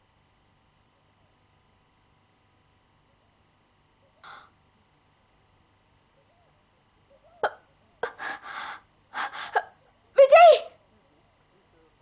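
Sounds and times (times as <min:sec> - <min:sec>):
woman gasping for breath: 0:08.0 - 0:09.7.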